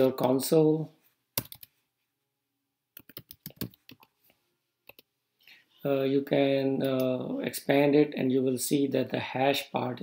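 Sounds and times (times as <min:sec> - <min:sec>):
typing on computer keyboard: 0:01.4 - 0:01.7, 0:03.0 - 0:04.1.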